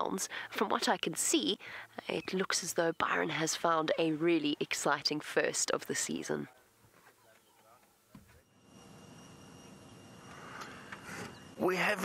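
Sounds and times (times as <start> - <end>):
outdoor background noise: 0.0 - 12.0
thin high whine: 8.0 - 12.0.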